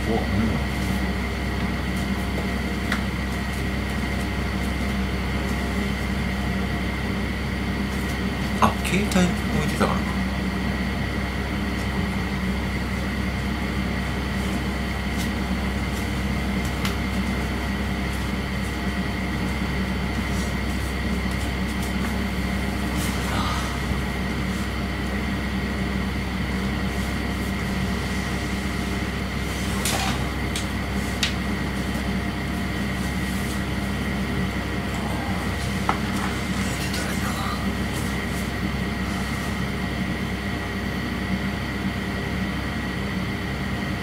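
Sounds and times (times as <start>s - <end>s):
electrical hum and hiss: 0.0s - 44.0s.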